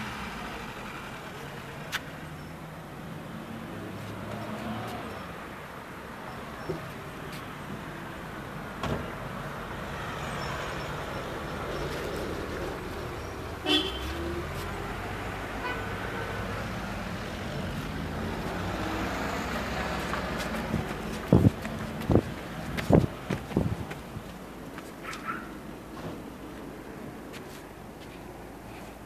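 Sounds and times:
vehicle engine and road noise: 0.0s - 29.0s.

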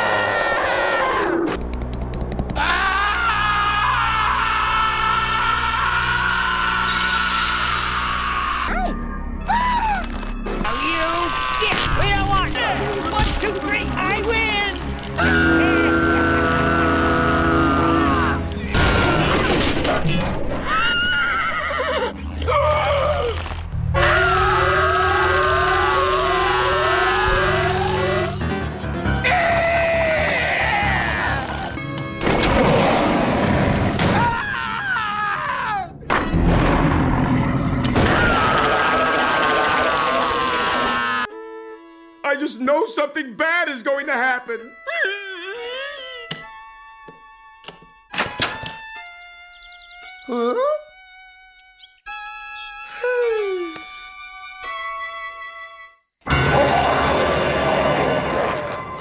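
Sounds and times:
cartoon dog screaming: 2.6s - 10.1s, 24.0s - 28.4s, 38.0s - 41.3s
eerie music notes: 2.6s - 19.8s, 22.1s - 42.1s, 55.8s - 59.0s
cartoon music: 15.2s - 19.1s, 43.5s - 47.5s, 48.7s - 59.0s.

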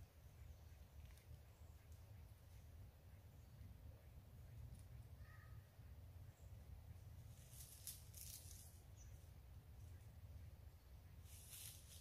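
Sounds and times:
faint rustle of dry leaves: 0.0s - 3.5s, 4.3s - 12.0s.

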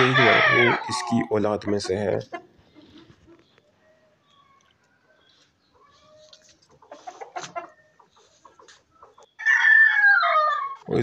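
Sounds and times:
rooster crowing: 0.0s - 1.0s, 9.4s - 10.8s
soft clucks: 1.1s - 3.7s, 5.8s - 9.4s.

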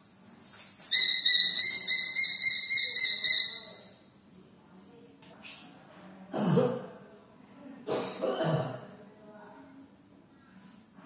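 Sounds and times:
high drawn-out whistling call: 0.8s - 4.2s.

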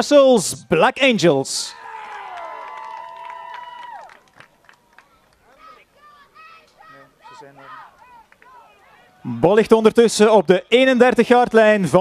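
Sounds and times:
distant people calling out: 5.0s - 9.4s
people shouting: 5.5s - 9.4s.

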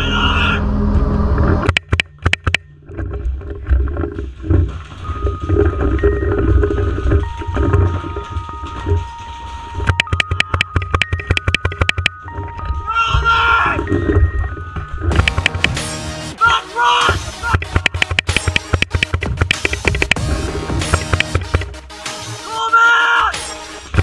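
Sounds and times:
low rumbling movement noise: 0.0s - 1.7s, 2.6s - 10.0s, 12.1s - 16.4s
steady background tones: 4.9s - 16.4s
paintball markers firing: 17.6s - 20.2s.

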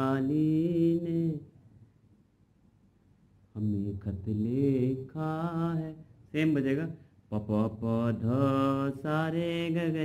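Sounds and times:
man singing long held notes: 3.6s - 10.0s.

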